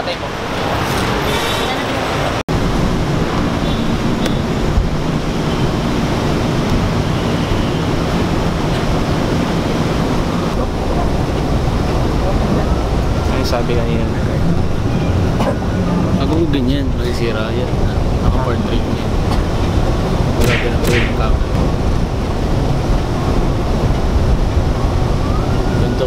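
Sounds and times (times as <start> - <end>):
murmur of passengers: 0.0 - 2.4, 8.2 - 24.8.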